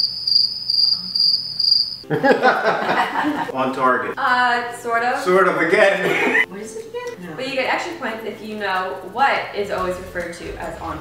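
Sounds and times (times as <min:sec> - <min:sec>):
crickets chirping: 0:00.0 - 0:03.4.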